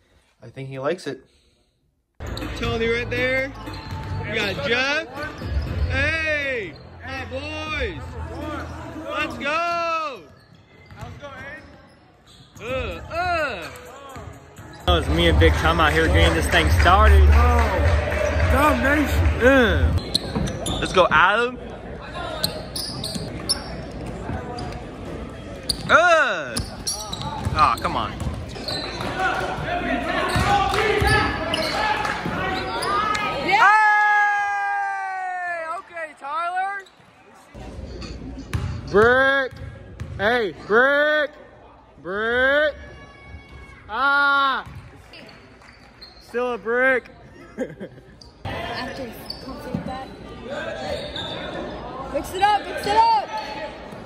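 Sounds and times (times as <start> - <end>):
crowd din with voices: 2.2 - 54.0
shoe squeaks and knocks: 3.6 - 7.0, 10.3 - 12.8, 20.0 - 21.2, 22.4 - 24.8, 25.6 - 29.2, 30.2 - 33.2, 50.8 - 51.6
basketball bouncing on court: 10.8 - 11.8, 26.6 - 29.6, 30.3 - 31.6, 38.5 - 40.3
loud shout: 29.2 - 36.0.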